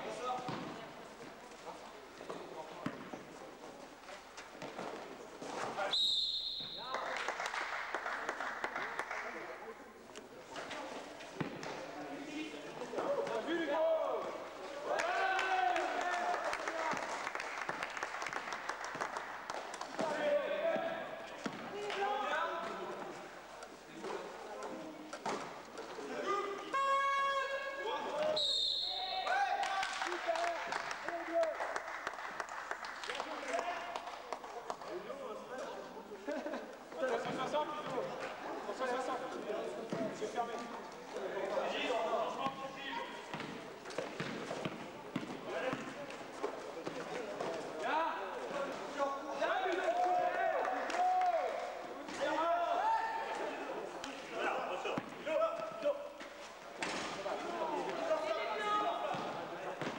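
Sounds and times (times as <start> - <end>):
basketball bouncing on court floor: 43.3 - 45.9.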